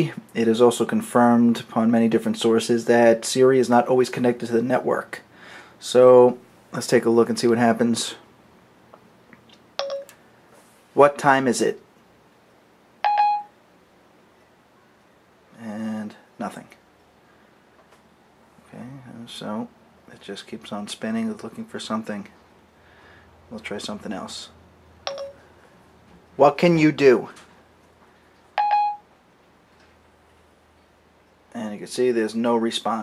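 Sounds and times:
short steady beep: 0:09.8 - 0:10.1, 0:13.0 - 0:13.5, 0:25.1 - 0:25.5, 0:28.6 - 0:29.1.

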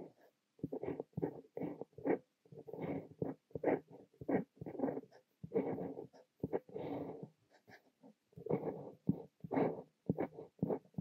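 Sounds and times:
fountain pen scratching on paper: 0:00.0 - 0:11.0.

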